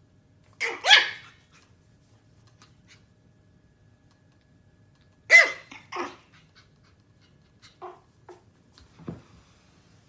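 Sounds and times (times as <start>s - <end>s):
small dog barking: 0.6s - 1.5s, 5.3s - 6.3s.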